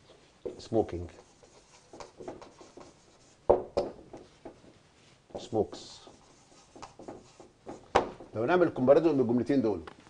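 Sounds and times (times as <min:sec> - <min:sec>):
marker rubbing on whiteboard: 0:00.4 - 0:08.4.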